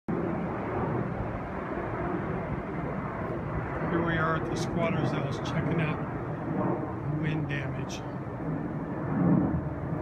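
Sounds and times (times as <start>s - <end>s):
outdoor background rumble: 0.1s - 10.0s.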